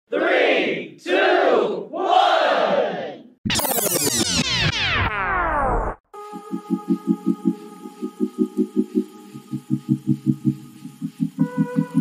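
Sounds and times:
crowd shouting: 0.1 - 3.3
synthesizer falling pitch sweeps: 3.4 - 11.8.

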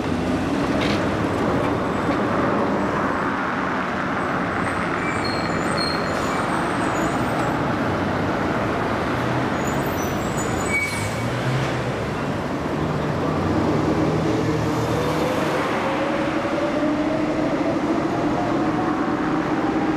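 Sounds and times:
city street traffic: 0.0 - 19.9.

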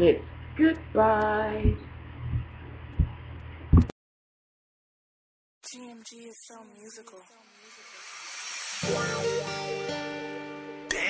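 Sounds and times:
hissing noise sweep: 7.6 - 9.9
guitar music: 8.8 - 11.0.

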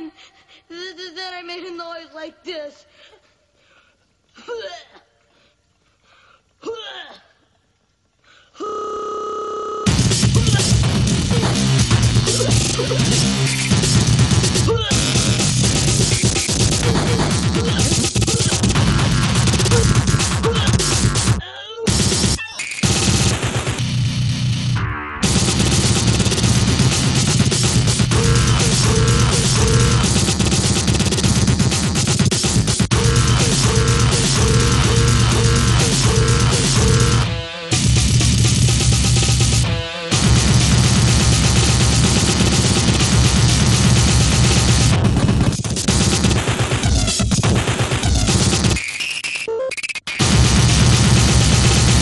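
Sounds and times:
fast dense electronic beat: 9.9 - 49.1, 50.1 - 52.0
buzzy electronic tone: 9.9 - 52.0.

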